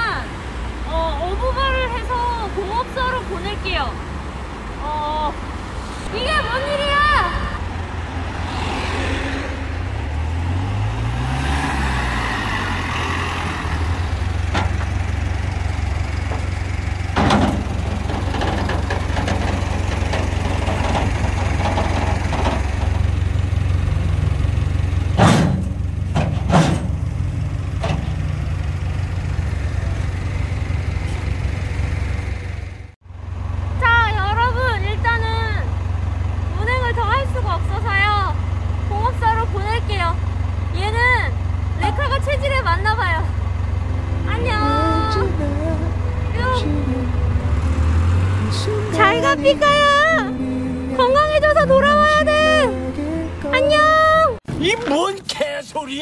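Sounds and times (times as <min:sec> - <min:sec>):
tow truck engine idling: 0:12.7 - 0:54.4
sharp metallic knocks: 0:25.1 - 0:27.2
wavering warbling high sound: 0:43.8 - 0:54.2.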